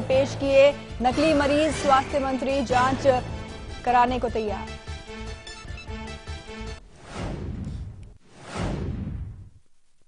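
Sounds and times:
whoosh with low rumble: 7.0 - 9.6.

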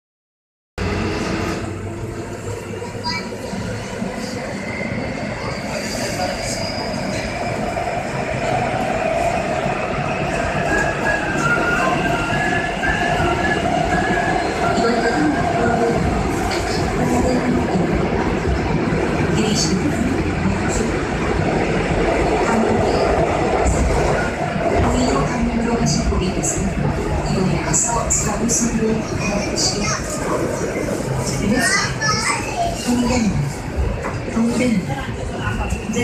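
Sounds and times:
subway wheels rumbling: 0.8 - 36.0.

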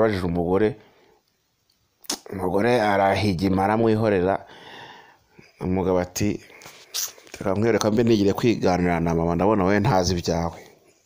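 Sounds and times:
man speaking: 0.0 - 0.8, 2.1 - 4.5, 5.4 - 10.8.

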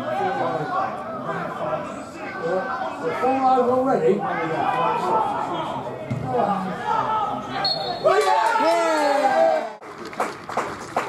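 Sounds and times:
people shouting: 6.6 - 9.8.

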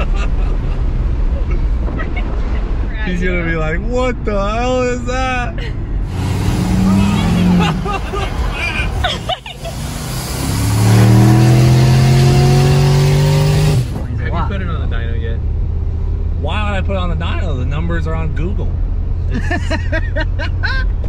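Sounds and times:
car engine at full throttle: 0.0 - 21.0.

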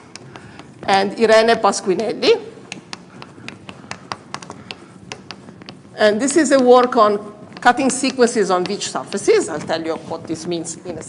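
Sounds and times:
light irregular taps: 0.0 - 11.0.

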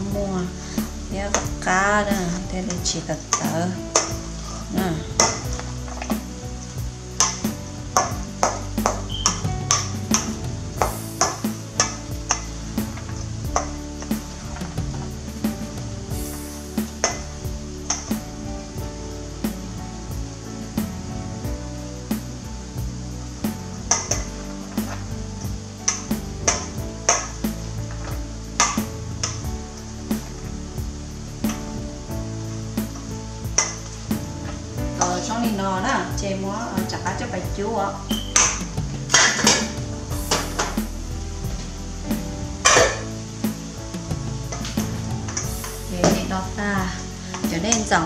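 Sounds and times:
background music: 0.0 - 48.0.

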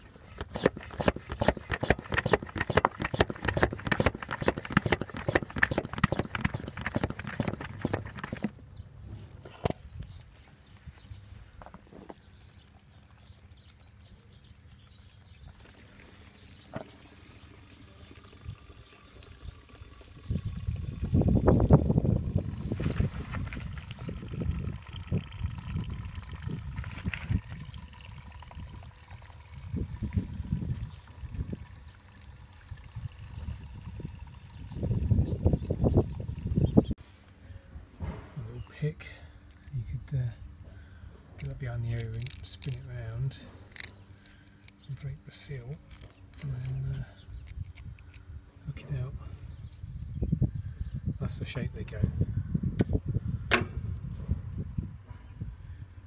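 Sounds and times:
hand vacuum pump clicking: 0.4 - 8.6, 41.9 - 42.8
wind rumbling on microphone: 19.4 - 37.0, 46.9 - 56.0.

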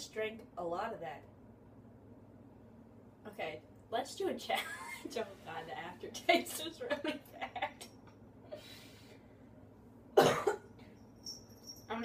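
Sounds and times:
faint breath: 8.5 - 9.6
woman coughing: 10.2 - 10.8.

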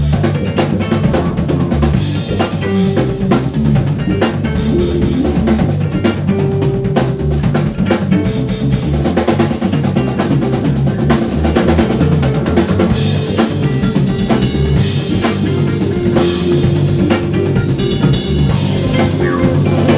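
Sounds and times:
drum kit beat: 0.0 - 19.9
electric bass: 0.0 - 19.9
electric guitar: 0.0 - 19.9.

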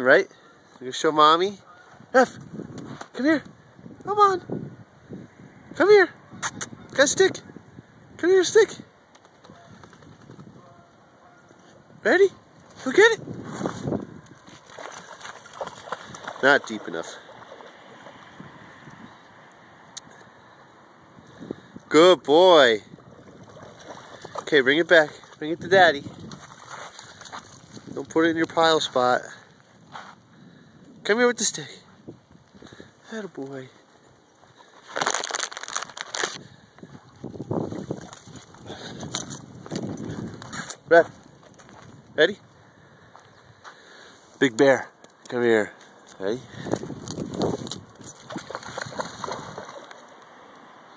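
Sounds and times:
dog splashing in shallow water: 14.4 - 18.2, 23.1 - 24.6, 26.2 - 27.8, 47.6 - 50.1.

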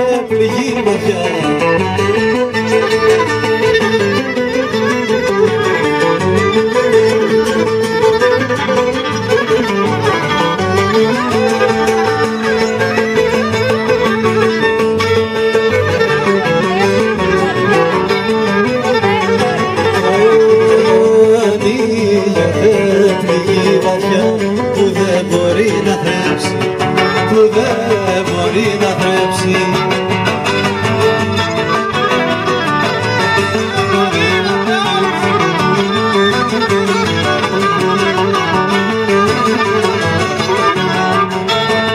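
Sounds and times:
acoustic guitar strumming: 0.0 - 41.9
lutes playing: 0.0 - 41.9
violin melody: 0.0 - 41.9.

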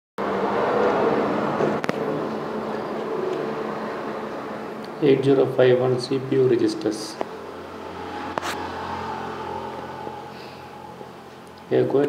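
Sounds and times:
low hum: 5.9 - 12.0.

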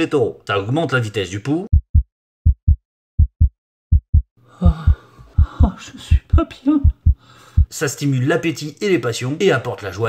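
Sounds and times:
heartbeat thumps: 1.7 - 7.8.

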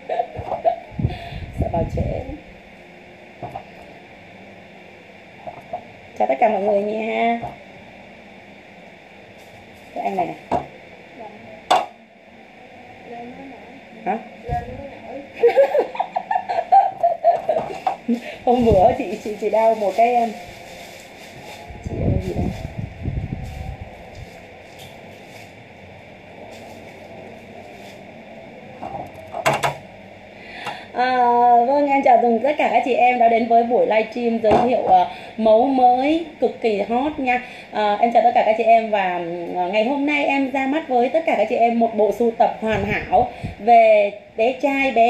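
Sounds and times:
faint hum and hiss: 0.0 - 45.0
microphone handling rumble: 0.3 - 2.6, 14.4 - 15.0, 17.5 - 20.6, 21.3 - 25.6, 42.6 - 43.7.

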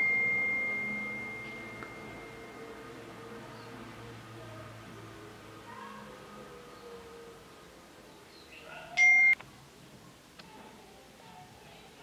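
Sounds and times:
high bell-like ring: 0.0 - 2.8, 9.0 - 9.4.

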